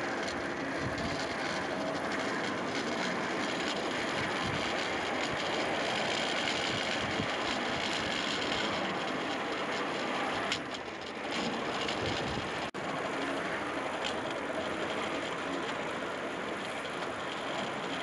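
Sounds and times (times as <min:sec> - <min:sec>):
rail trolley wheels rolling on track: 0:00.0 - 0:18.0.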